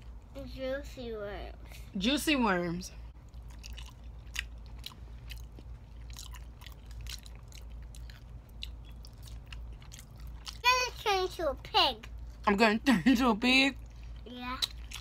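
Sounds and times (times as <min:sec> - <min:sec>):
chewing with wet crunches: 0:03.0 - 0:12.5, 0:13.7 - 0:15.0.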